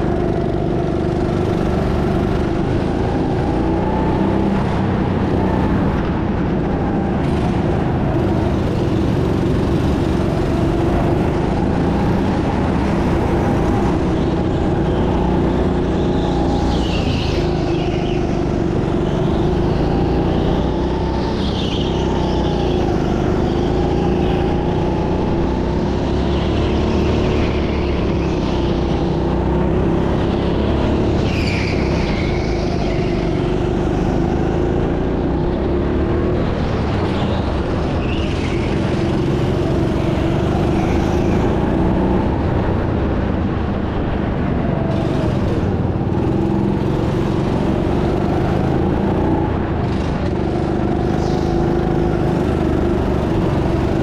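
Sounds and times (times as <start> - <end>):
go-kart engine drone: 0.0 - 54.0
high wavering squeals: 11.7 - 34.9.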